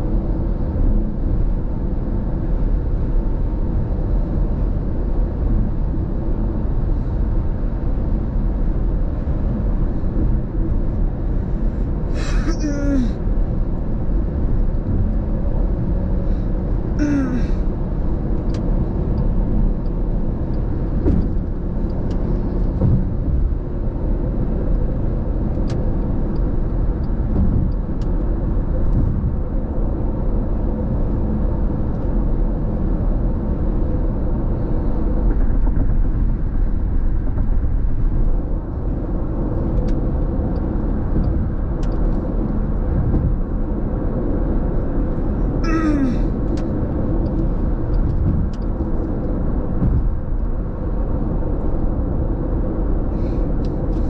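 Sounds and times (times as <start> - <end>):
road and engine noise in car: 0.0 - 54.0.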